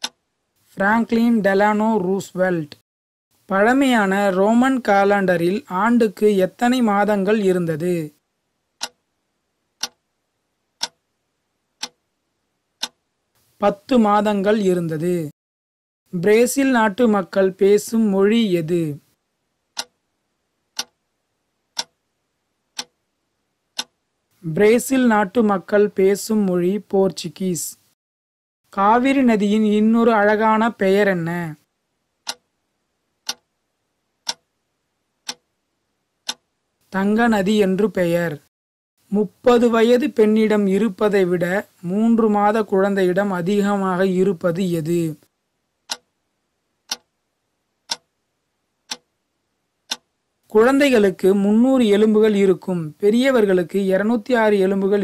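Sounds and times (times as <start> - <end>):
clock ticks: 0.0 - 0.2, 8.8 - 9.0, 9.8 - 10.0, 10.8 - 11.0, 11.8 - 12.1, 12.8 - 13.0, 19.8 - 20.0, 20.7 - 21.0, 21.7 - 22.0, 22.7 - 23.0, 23.7 - 24.0, 32.2 - 32.5, 33.2 - 33.5, 34.2 - 34.5, 35.2 - 35.5, 36.2 - 36.5, 45.8 - 46.1, 46.8 - 47.2, 47.8 - 48.1, 48.8 - 49.2, 49.9 - 50.1.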